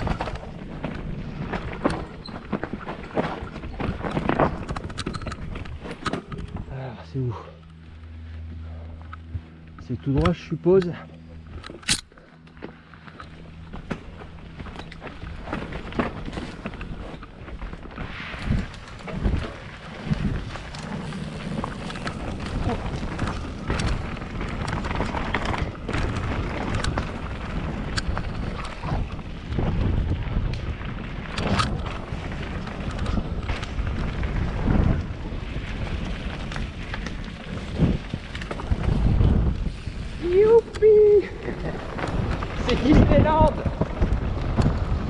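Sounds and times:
bike rattling over bumps: 0.0s - 45.0s
tyres on dirt: 0.0s - 45.0s
wind buffeting microphone: 18.4s - 45.0s.

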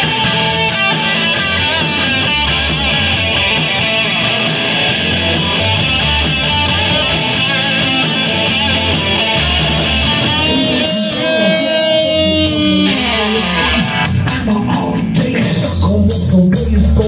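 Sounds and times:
bass guitar: 0.0s - 17.0s
drum kit beat: 0.0s - 17.0s
electric guitars: 0.0s - 17.0s.

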